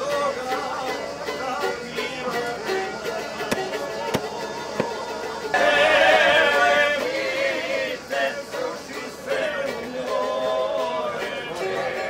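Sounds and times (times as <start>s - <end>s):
music: 0.0s - 12.0s
people chattering: 0.0s - 12.0s.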